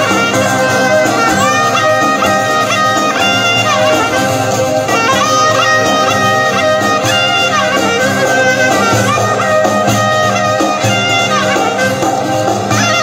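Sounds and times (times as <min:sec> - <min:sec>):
folk string music: 0:00.0 - 0:13.0.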